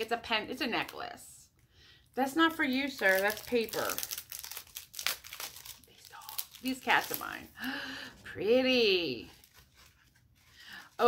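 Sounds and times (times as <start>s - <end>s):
plastic packaging crinkling: 2.2s - 7.8s, 8.8s - 11.0s.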